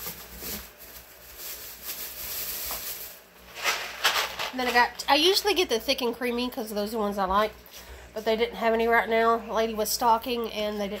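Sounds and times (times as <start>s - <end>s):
plastic shopping bags rustling: 0.0s - 5.4s.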